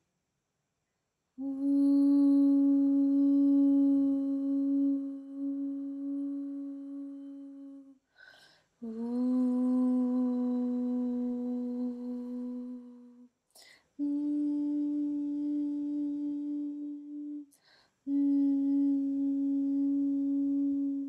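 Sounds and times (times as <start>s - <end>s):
woman humming long notes: 1.4s - 8.0s, 8.8s - 13.3s, 14.0s - 21.0s
breath: 8.0s - 8.8s, 13.5s - 14.0s, 17.5s - 18.0s.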